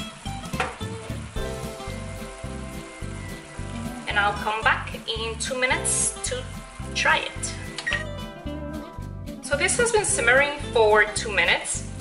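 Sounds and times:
food sizzling in a frying pan: 0:00.0 - 0:08.4
background music with beat: 0:00.0 - 0:10.8.

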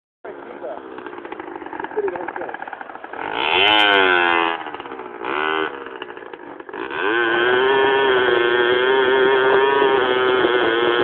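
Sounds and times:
small motorbike engine running: 0:00.3 - 0:11.0.

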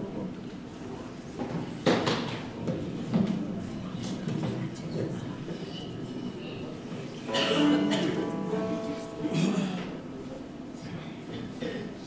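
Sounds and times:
audience murmur: 0:00.0 - 0:12.0.

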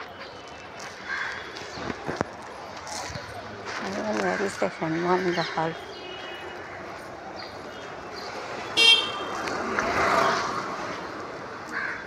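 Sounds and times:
street traffic noise: 0:00.0 - 0:12.0
short high car horn toot: 0:08.8 - 0:09.2.

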